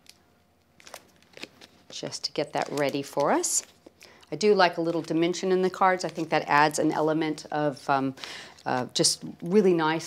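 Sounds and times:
paper crackles and ticks: 0.8s - 3.8s, 4.8s - 6.6s.

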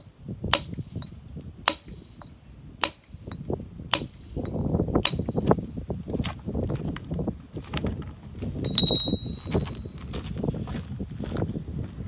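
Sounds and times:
footsteps on gravelly dirt: 5.4s - 12.0s.

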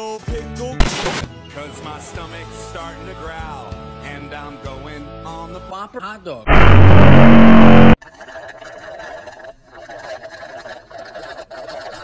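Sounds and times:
drink slurped through straw: 8.1s - 12.0s.

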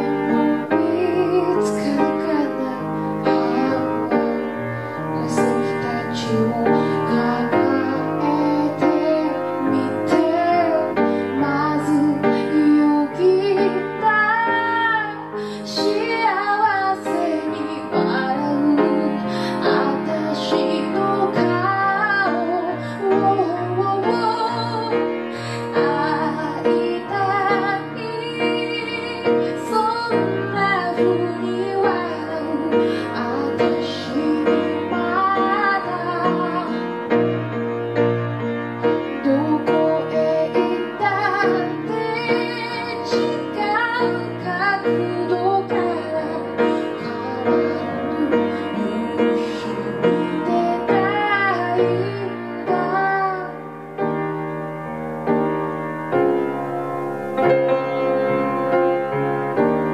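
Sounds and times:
woman singing: 0.0s - 37.3s, 38.9s - 53.8s
grand piano accompaniment: 0.0s - 59.9s.

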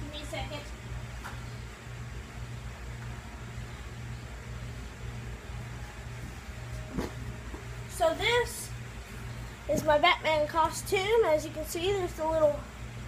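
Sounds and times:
low room hum: 0.0s - 13.0s.

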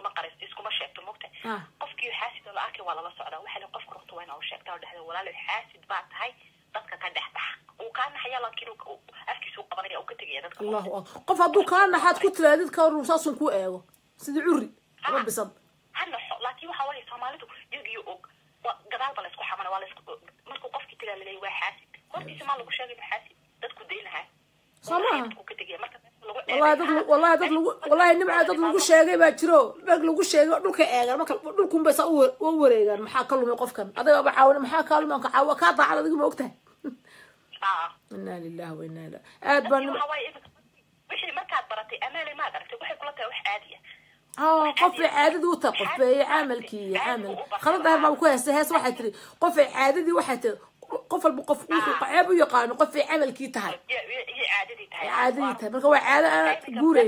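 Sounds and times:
tinny voice over telephone: 0.0s - 10.8s, 16.0s - 24.3s, 41.1s - 44.0s, 53.7s - 55.6s
person talking over telephone: 0.0s - 36.4s, 37.5s - 40.5s, 41.1s - 49.0s, 50.8s - 57.0s.

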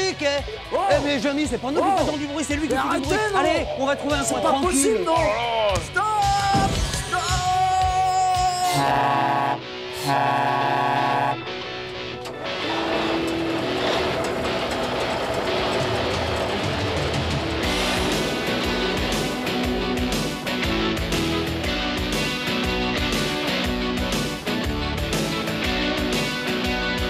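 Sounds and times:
guitar-led band music: 0.0s - 27.0s
truck air horn blast: 8.6s - 11.7s.

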